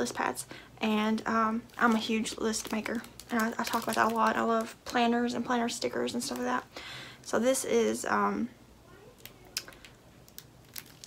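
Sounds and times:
paper pad crinkling: 1.6 - 4.8.

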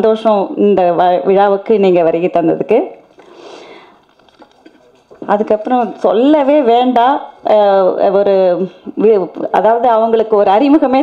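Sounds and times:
woman speaking into a microphone: 0.0 - 3.1, 5.2 - 11.0.

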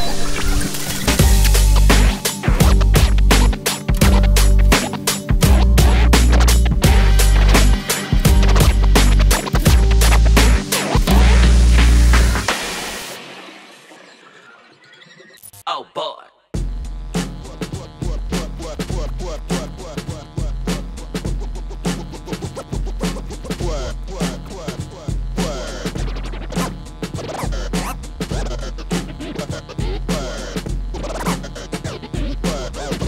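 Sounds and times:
turntable scratching: 0.0 - 15.6, 17.2 - 33.0
electronic music: 0.0 - 16.0
hip hop beat: 1.1 - 13.6, 16.6 - 33.0.

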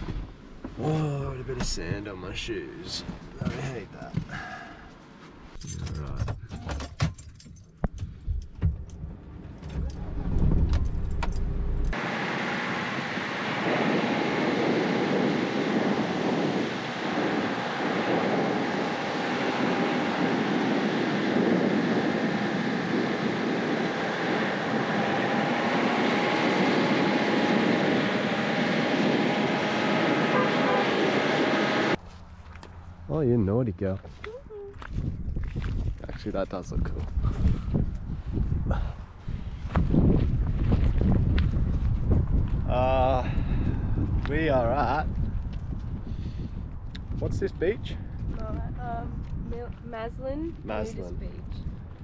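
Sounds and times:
van driving on sand: 0.0 - 6.2, 9.0 - 34.0
clicks and rattles in van cab: 5.5 - 12.0
wind rushing: 12.1 - 32.0, 36.7 - 52.0.

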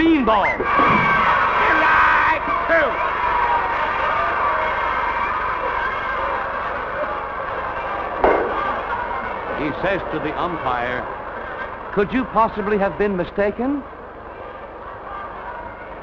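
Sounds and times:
steady background noise: 0.0 - 16.0
sharp thump: 8.2 - 8.7.

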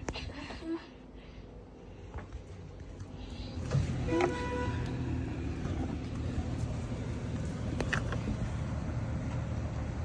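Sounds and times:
road traffic rumble: 1.0 - 10.0
short car horn toot: 4.0 - 4.9.

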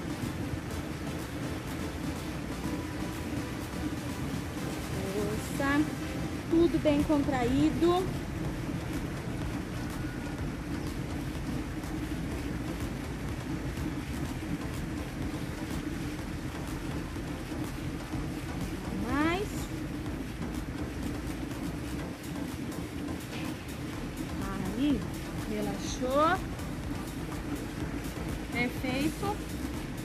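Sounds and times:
rumbling outdoor background: 0.0 - 30.0
steady low hum: 0.0 - 30.0.

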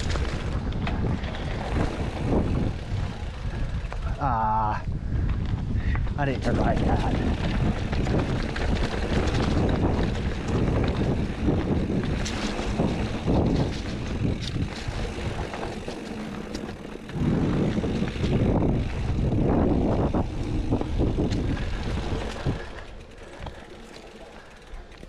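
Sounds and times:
wind buffeting microphone: 0.0 - 23.6
bike clicks and rattles: 0.0 - 25.0
bike tyres rolling on dirt: 0.0 - 25.0.

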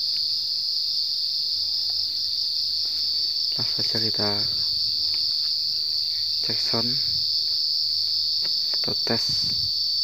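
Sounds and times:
high-pitched insect chorus: 0.0 - 10.0.

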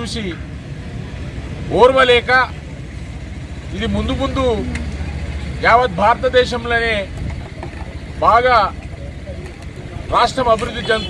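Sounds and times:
man speaking loudly: 5.6 - 7.1, 10.1 - 11.0.

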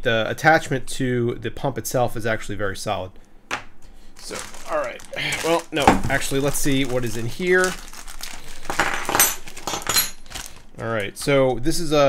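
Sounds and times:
plastic packaging rustling: 4.1 - 11.4
metal accessories clinking on desk: 8.7 - 10.4.

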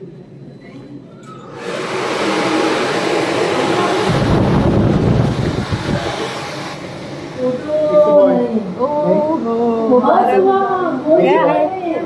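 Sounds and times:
heavy low rumble: 3.5 - 6.7.

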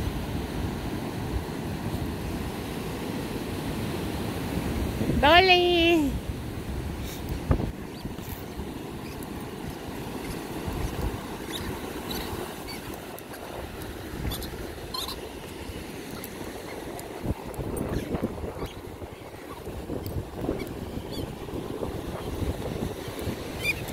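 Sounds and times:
ocean surf on beach: 0.0 - 23.9
wind rumbling on microphone: 0.0 - 23.9.

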